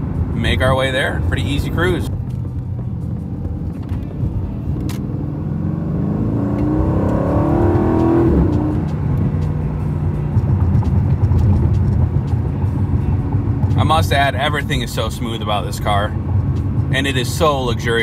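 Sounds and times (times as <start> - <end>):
car engine from inside cabin: 0.0 - 18.0.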